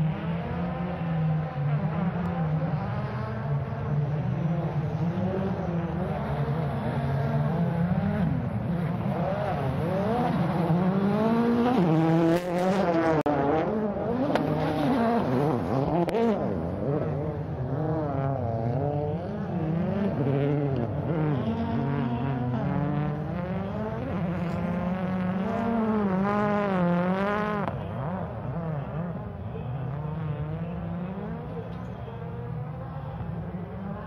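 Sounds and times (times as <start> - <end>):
rally car engine revving: 0.0 - 34.0.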